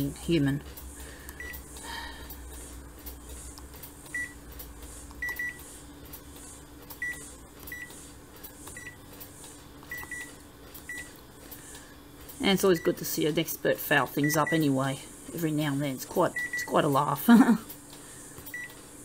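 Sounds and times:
low steady hum: 0.0 - 19.0
touch panel beeps: 4.1 - 4.4, 5.2 - 5.6, 9.9 - 10.3, 14.2 - 14.7, 16.3 - 16.8, 18.5 - 18.8.

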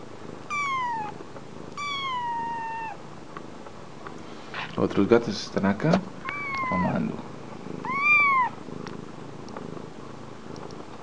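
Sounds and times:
kitten mewing: 0.5 - 1.2, 1.8 - 3.0, 6.2 - 7.1, 7.8 - 8.6
soft low purring: 6.2 - 11.0
faint clicks: 10.5 - 11.0.

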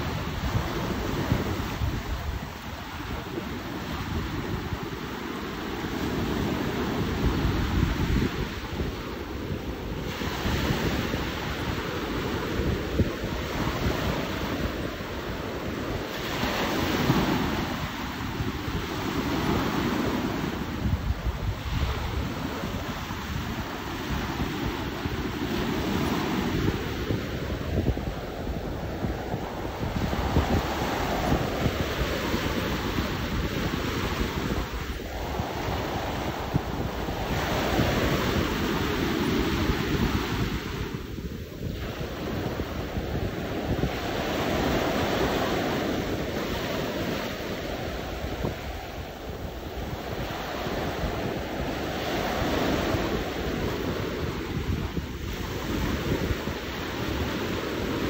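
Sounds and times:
sea waves breaking on shore: 0.0 - 58.0
wind rumbling on microphone: 0.0 - 58.0.

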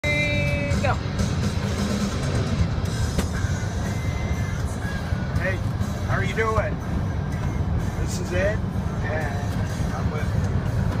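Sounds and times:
van road rumble: 0.0 - 11.0.

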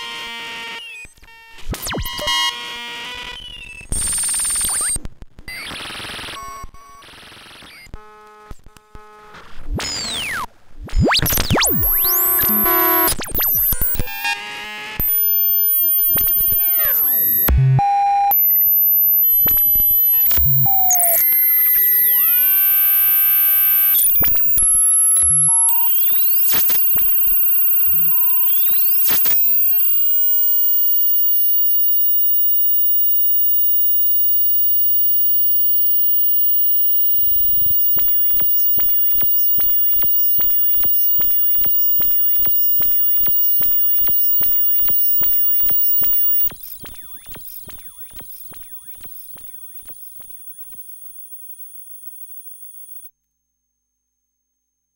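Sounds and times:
glitchy synthesizer tones: 11.0 - 14.3, 15.0 - 51.3.

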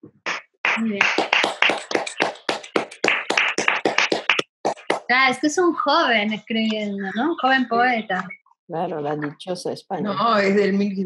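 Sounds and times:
hands clapping: 0.1 - 5.4.

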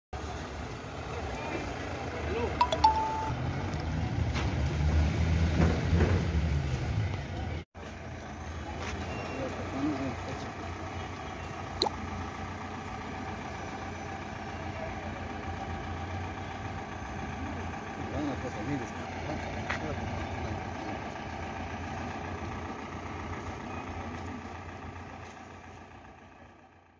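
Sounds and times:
vehicle engine rumble: 0.2 - 26.9.

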